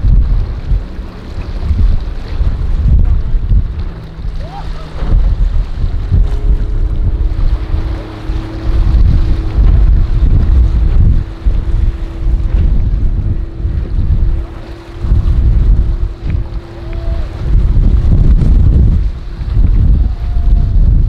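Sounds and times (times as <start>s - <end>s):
outboard motor: 0.0s - 21.0s
wind buffeting microphone: 0.0s - 21.0s.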